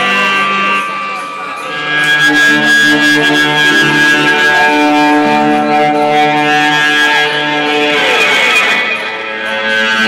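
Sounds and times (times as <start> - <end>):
live band holding a chord: 0.0 - 10.0.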